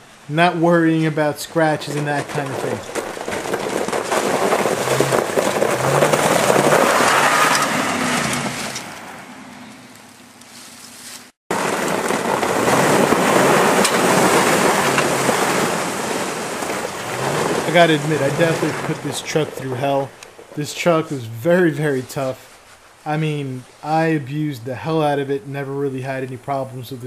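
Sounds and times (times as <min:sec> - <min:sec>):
heavy rushing noise: 0:00.0 - 0:09.6, 0:11.5 - 0:20.2
truck engine revving: 0:03.9 - 0:09.8, 0:12.0 - 0:20.2.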